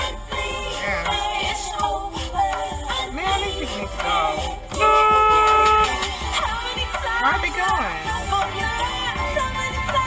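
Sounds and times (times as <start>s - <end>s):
r and b music: 0.0s - 10.0s
car horn honk: 4.7s - 6.4s.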